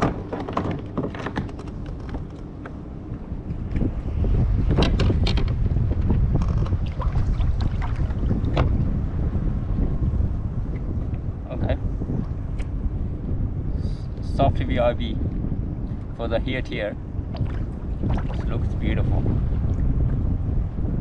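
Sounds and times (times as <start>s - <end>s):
clicks and knocks of gear: 0.0s - 2.8s, 4.8s - 5.6s, 6.3s - 6.8s
wind buffeting microphone: 0.0s - 21.0s.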